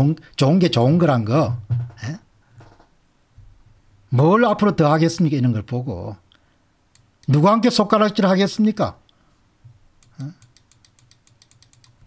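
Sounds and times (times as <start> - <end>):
typing on computer keyboard: 10.0 - 12.0.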